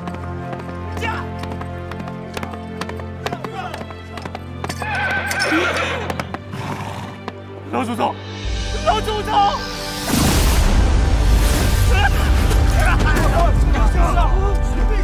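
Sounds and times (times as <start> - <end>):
horse hooves clattering: 0.0 - 7.5
horse whinnying: 4.7 - 7.3.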